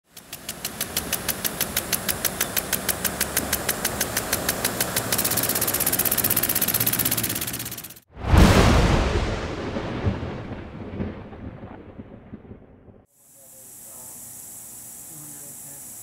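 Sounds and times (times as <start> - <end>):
rhythmic mechanical clicking: 0.0 - 8.1.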